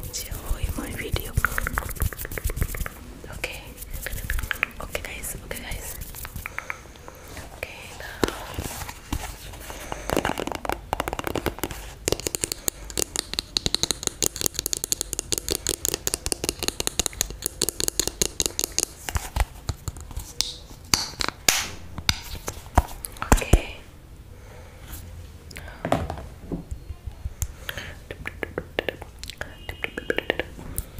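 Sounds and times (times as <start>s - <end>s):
person whispering: 0.0s - 8.9s, 23.2s - 23.9s, 27.6s - 30.5s
fingernails tapping on plastic tube: 10.1s - 22.4s.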